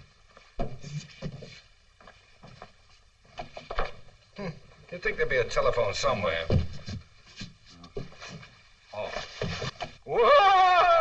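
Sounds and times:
man's startled exclamation: 10.1 - 11.0.

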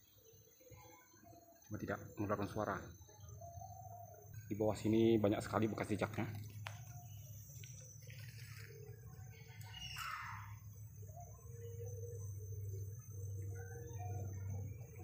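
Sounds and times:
insects chorus: 0.0 - 15.0
footsteps rustling through leaves: 8.0 - 8.8.

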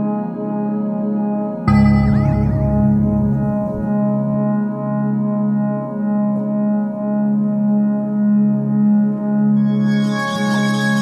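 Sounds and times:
sustained synthesizer chord: 1.7 - 11.0.

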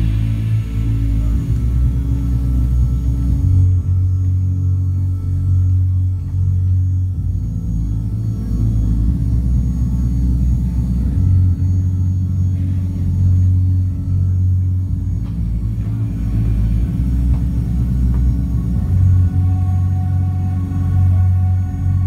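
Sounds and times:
deep bass notes: 0.0 - 22.0.

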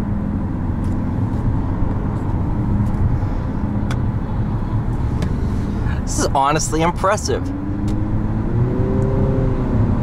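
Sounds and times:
car engine drone: 0.0 - 10.0
road and tyre noise: 0.0 - 10.0.

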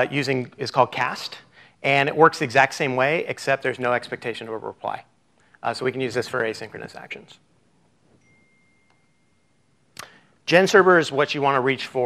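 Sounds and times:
faint high-pitched tone: 8.1 - 10.0.

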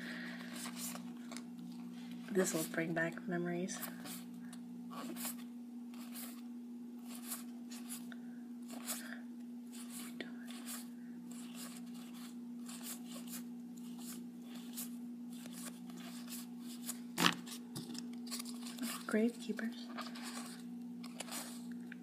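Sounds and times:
steady low hum: 0.0 - 22.0
cards sliding with paper swish: 5.0 - 6.4, 7.0 - 8.1, 9.7 - 19.1, 20.0 - 21.7.

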